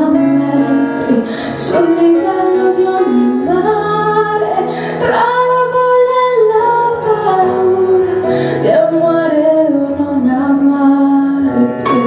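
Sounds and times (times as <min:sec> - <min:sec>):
instrumental backing: 0:00.0 - 0:12.0
woman singing pop ballad: 0:00.0 - 0:12.0.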